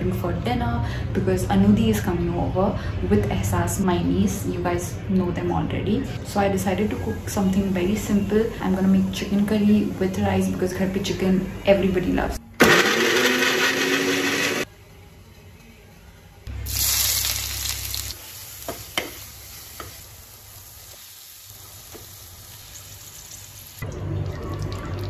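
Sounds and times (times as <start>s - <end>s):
mixer grinder running: 12.6s - 14.6s
food sizzling in a pan: 16.5s - 23.9s.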